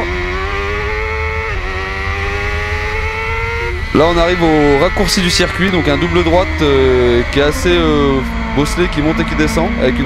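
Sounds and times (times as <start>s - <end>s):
motorcycle engine at full throttle: 0.0s - 10.0s.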